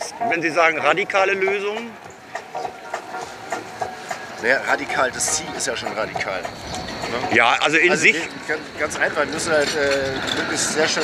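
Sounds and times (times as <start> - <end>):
faint street background: 0.0 - 11.0.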